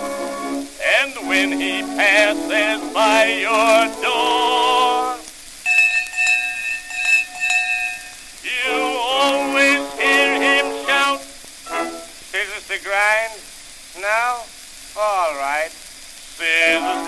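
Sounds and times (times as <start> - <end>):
musical accompaniment: 0.0 - 12.2, 16.4 - 17.0
man singing: 0.8 - 5.3, 8.4 - 11.3, 16.3 - 17.0
hand bell ringing: 5.7 - 8.4.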